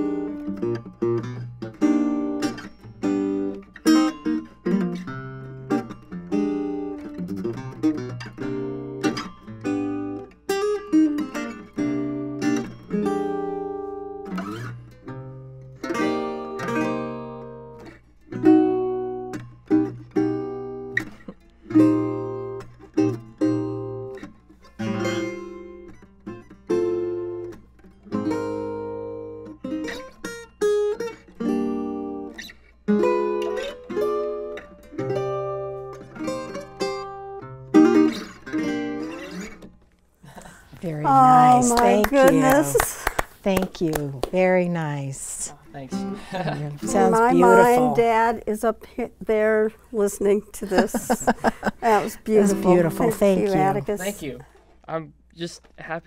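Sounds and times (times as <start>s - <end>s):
solo acoustic guitar: 0.0s - 55.0s.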